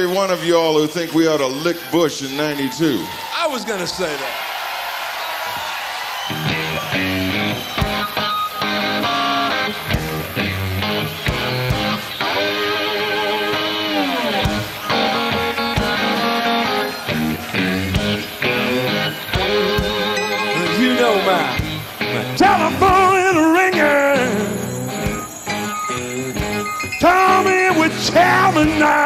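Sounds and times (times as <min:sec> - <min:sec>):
electric guitar playing blues: 0:06.3 - 0:29.0
low bass notes: 0:17.1 - 0:19.6.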